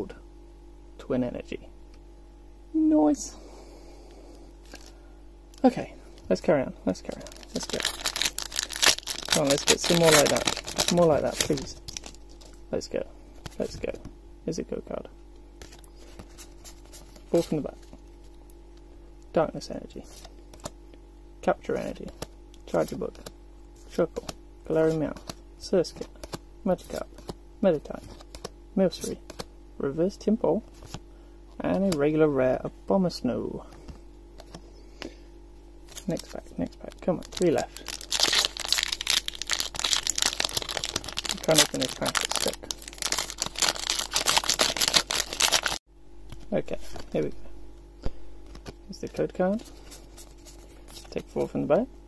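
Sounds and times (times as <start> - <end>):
person speaking word: 2.7 - 3.5, 41.3 - 42.7, 46.5 - 47.5
foil wrapper crinkling: 7.0 - 12.6, 35.9 - 45.8
cards sliding and shuffling: 21.7 - 29.5, 30.7 - 31.0.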